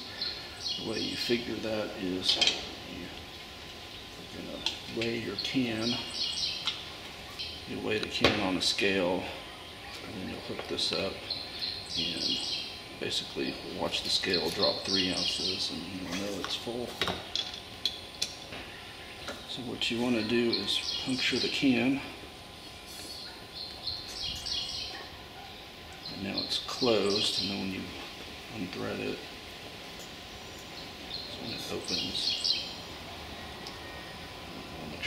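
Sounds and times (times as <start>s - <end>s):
steady background noise: 0.0s - 35.0s.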